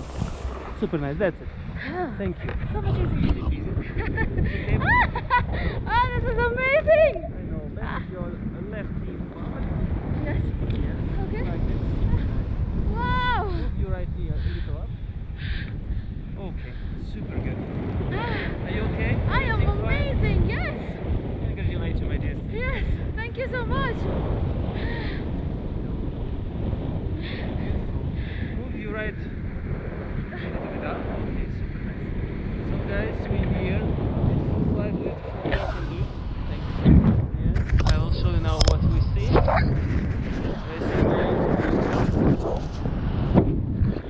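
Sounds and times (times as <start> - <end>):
wind buffeting microphone: 0.0 - 44.0.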